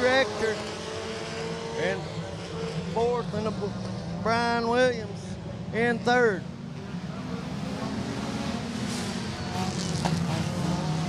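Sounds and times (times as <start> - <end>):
racing car engines droning: 0.0 - 11.0.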